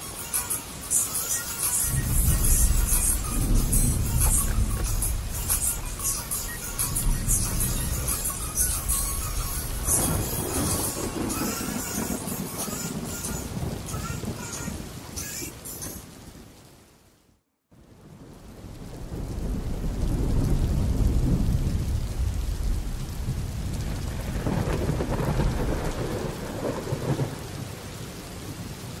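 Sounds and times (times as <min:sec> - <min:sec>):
song: 0:00.0 - 0:15.5
heavy rain: 0:00.0 - 0:29.0
thunder rumble: 0:01.8 - 0:15.3, 0:18.0 - 0:29.0.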